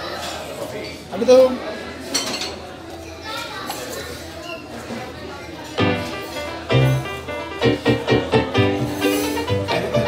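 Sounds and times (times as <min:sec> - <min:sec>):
diners chattering: 0:00.0 - 0:10.0.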